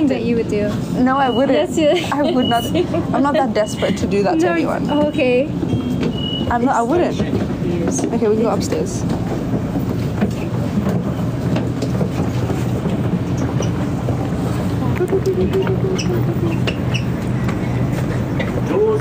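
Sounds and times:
train carriage hum and rumble: 0.0 - 19.0
person laughing: 15.0 - 16.7.

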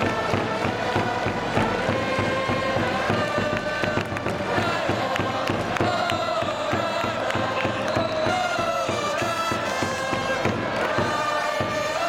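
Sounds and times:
crowd clapping: 0.0 - 12.0
crowd singing and shouting: 0.0 - 12.0
drums beating: 0.0 - 12.0
trumpets playing melody: 8.8 - 12.0.

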